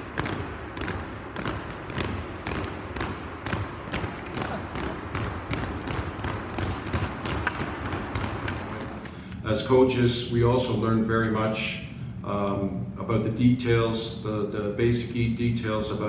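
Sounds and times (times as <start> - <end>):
skate and stick blades clicking on ice: 0.0 - 9.1
low rink hum: 0.0 - 12.0.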